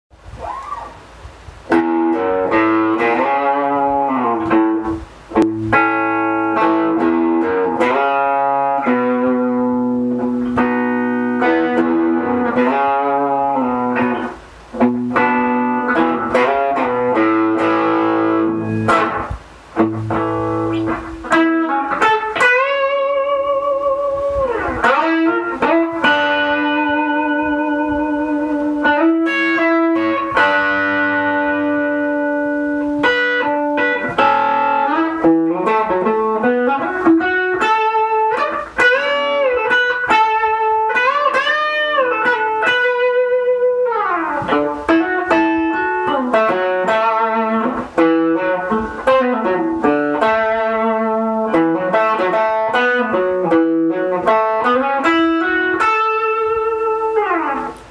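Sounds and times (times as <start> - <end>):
electric guitar lead line: 0.2 - 57.9.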